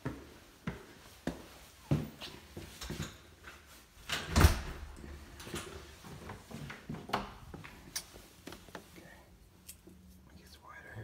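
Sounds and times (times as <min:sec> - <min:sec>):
footsteps walking: 0:00.0 - 0:04.0, 0:05.1 - 0:09.0.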